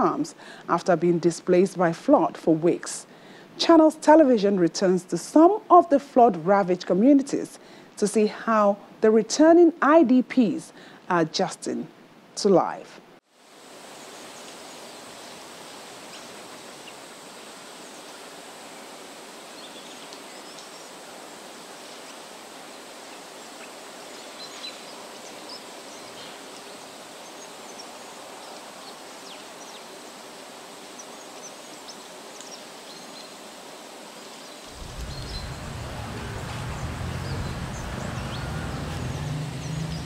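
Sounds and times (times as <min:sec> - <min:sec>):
background hiss: 0:00.0 - 0:40.0
low rumble: 0:34.7 - 0:40.0.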